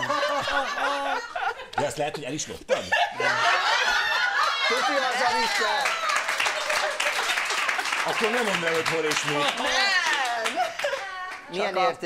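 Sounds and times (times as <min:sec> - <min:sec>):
people laughing: 0:00.0 - 0:11.5.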